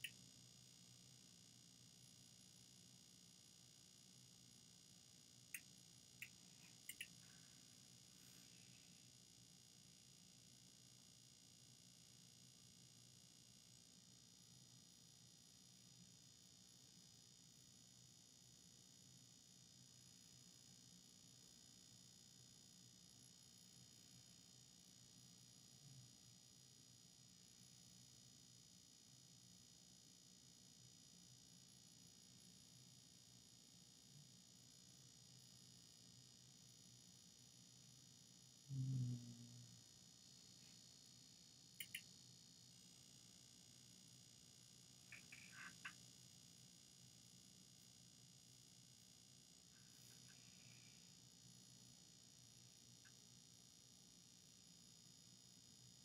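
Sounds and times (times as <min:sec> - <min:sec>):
faint clicks: 0:05.5 - 0:07.2, 0:41.8 - 0:42.0
brief low sound: 0:38.7 - 0:39.6.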